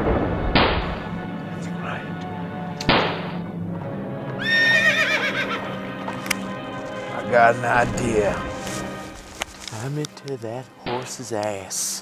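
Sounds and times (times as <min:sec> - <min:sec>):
sharp bangs: 0:00.0 - 0:01.2, 0:02.8 - 0:03.5
music bed: 0:00.9 - 0:12.0
horse whinnying: 0:04.4 - 0:05.7.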